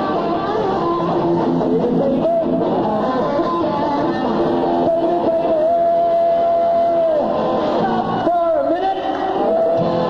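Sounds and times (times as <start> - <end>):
man singing: 0.0 - 9.9
live band with guitar: 0.0 - 10.0.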